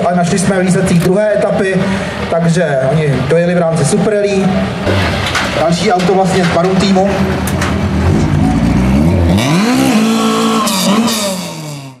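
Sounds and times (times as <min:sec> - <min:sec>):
car engine revving: 0:04.6 - 0:12.0.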